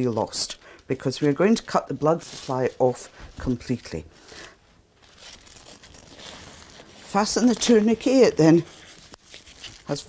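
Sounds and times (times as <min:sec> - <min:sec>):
strap rustling and scraping on cloth: 0:00.0 - 0:10.0.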